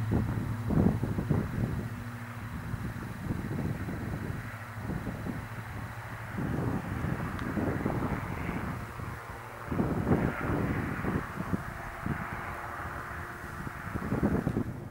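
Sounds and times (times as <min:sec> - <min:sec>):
aircraft engine and propeller drone: 0:00.0 - 0:14.9
wind buffeting microphone: 0:00.0 - 0:14.9.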